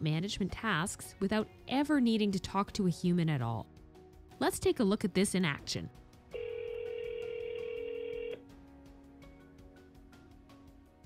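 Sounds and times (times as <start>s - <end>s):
phone ringback tone: 6.3s - 8.4s.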